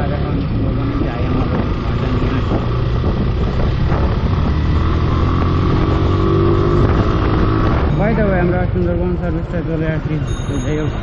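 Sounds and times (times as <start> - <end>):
motorcycle engine running: 0.0 - 11.0
wind noise on microphone: 0.0 - 11.0.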